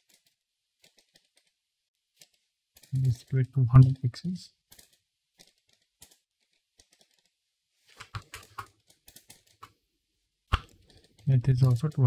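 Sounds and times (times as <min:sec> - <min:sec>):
computer keyboard typing: 0:04.7 - 0:07.3, 0:08.1 - 0:09.7.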